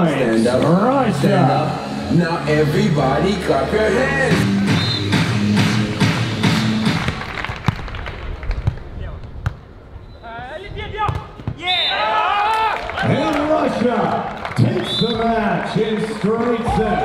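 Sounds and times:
stadium music with a beat: 0.5s - 7.4s
excited shouting: 10.9s - 14.1s, 16.4s - 17.0s.

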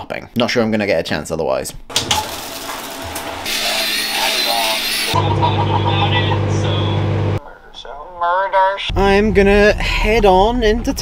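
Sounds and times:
shower spraying water: 1.9s - 5.2s
microwave oven humming: 5.1s - 7.4s.

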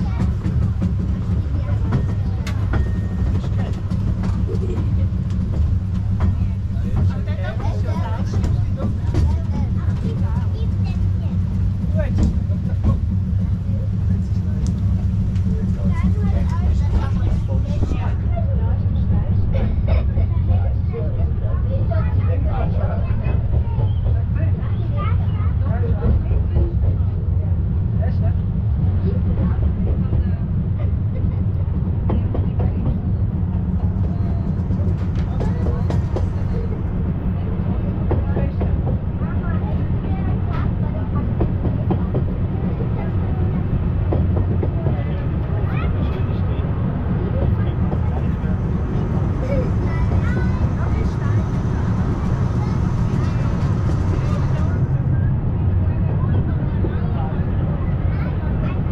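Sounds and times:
passengers talking: 0.0s - 58.9s
train carriages rumbling on track: 0.0s - 58.9s.

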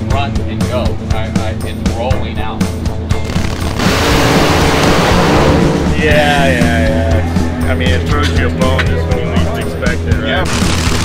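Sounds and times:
rock music: 0.0s - 11.0s
dragster engine at full throttle: 3.3s - 5.9s, 10.4s - 11.0s.

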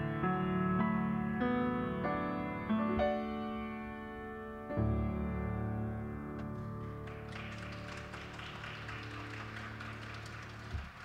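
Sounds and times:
people clapping: 6.5s - 11.0s.

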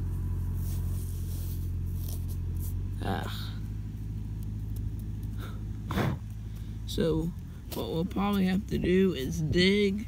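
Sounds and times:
low engine-like hum: 0.0s - 10.0s.

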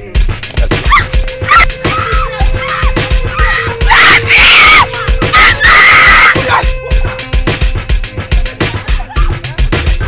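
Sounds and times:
background music with low beat: 0.0s - 10.0s
woman screaming: 0.9s - 6.7s.

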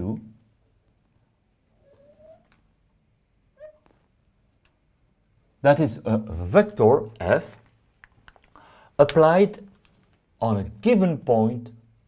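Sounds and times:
marker squeaking on glass: 1.8s - 2.6s, 3.6s - 4.0s.

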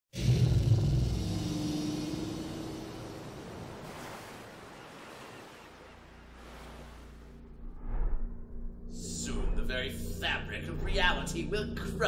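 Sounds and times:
soft whoosh: 7.6s - 8.7s.

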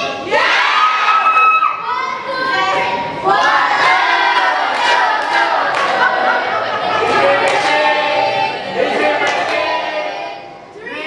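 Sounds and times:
children shouting and cheering: 0.0s - 7.1s.

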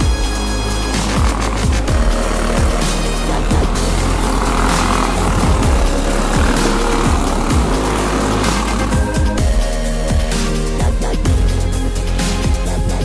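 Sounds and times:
go-kart engines buzzing: 0.0s - 10.8s
electronic music with kick drum: 0.0s - 13.0s.

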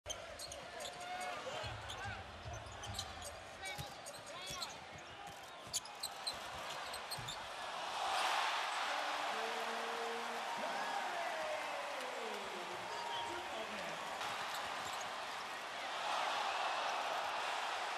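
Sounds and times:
shoe squeaks: 0.4s - 7.5s
arena crowd cheering: 6.1s - 17.9s.

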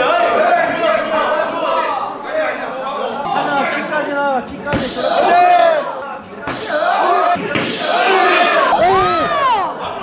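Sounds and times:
people shouting excitedly: 4.8s - 10.0s.

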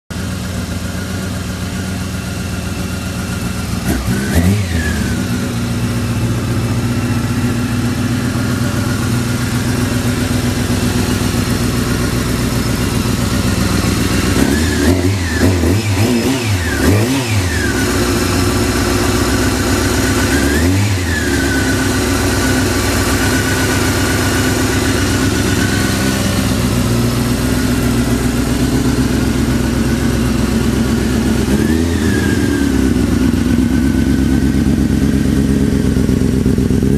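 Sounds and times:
motorcycle engine idling: 0.1s - 36.9s
motorcycle throttle revs: 0.5s - 36.9s.

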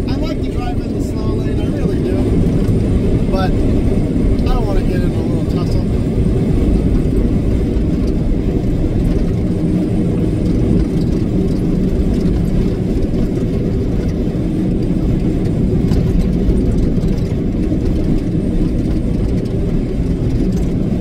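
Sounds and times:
truck engine drone in cab: 0.0s - 21.0s.

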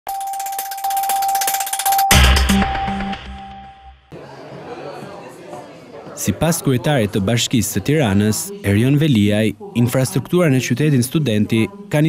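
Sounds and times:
steady high electronic tone: 0.1s - 4.1s.

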